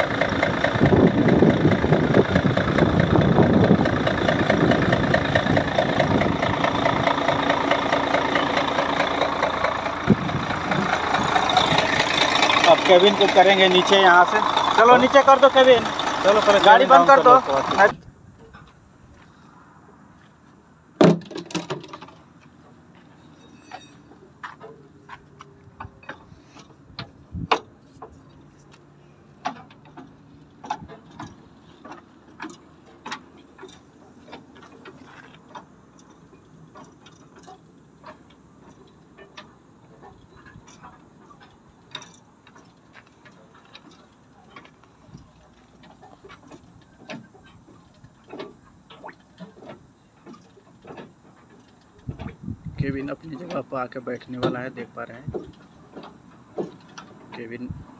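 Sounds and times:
truck cab clunk: 0:00.0 - 0:18.8, 0:21.0 - 0:22.8, 0:23.6 - 0:57.9
metallic clicks and knocks: 0:23.7 - 0:52.4.

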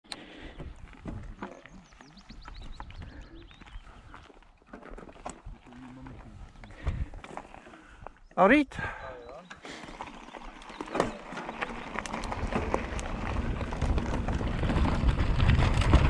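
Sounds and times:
bike clicks and rattles: 0:00.1 - 0:07.7, 0:09.4 - 0:16.0
bike tyres crunching on gravel: 0:00.2 - 0:08.2, 0:09.6 - 0:16.0.

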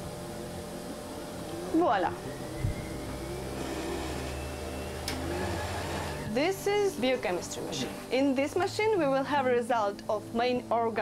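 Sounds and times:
faint high whine: 0:00.0 - 0:08.2
low motor hum: 0:00.0 - 0:08.2.

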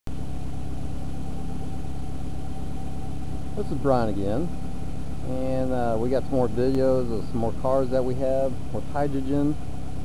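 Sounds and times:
car engine idling: 0:00.1 - 0:10.0
thin steady whine: 0:00.1 - 0:10.0.

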